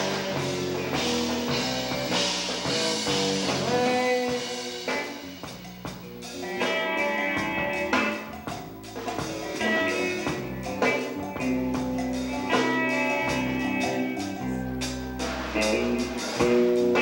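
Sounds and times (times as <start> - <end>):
drum kit: 0.0 - 17.0
electric guitars: 0.0 - 17.0.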